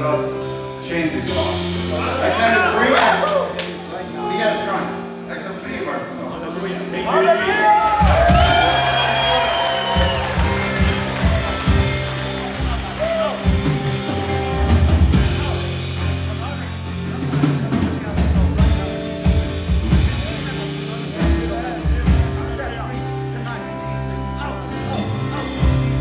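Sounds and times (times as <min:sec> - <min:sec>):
worship band playing: 0:00.0 - 0:26.0
excited voices shouting: 0:07.2 - 0:13.5
drum kit beat: 0:07.7 - 0:23.8.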